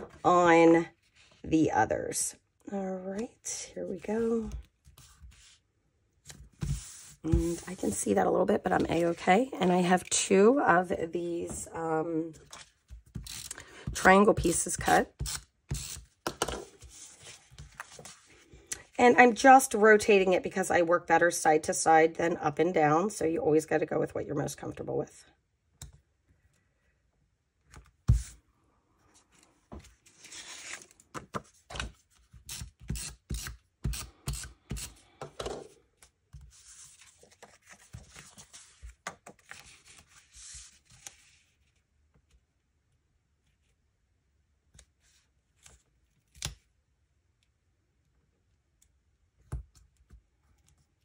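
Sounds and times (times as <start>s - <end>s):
paper sliding and rustling: 6.3s - 8.0s, 16.7s - 18.5s, 29.4s - 32.4s, 36.4s - 41.6s.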